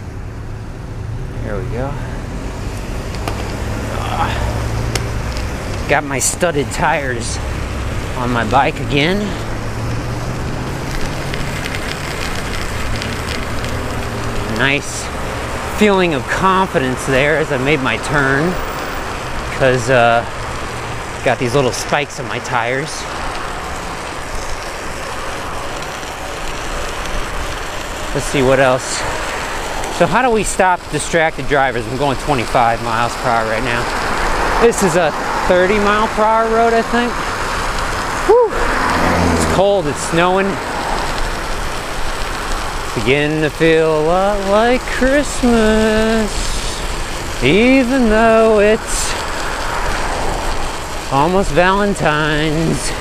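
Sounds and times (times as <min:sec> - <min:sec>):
bicycle tyres rolling on wet road: 0:00.0 - 0:53.0.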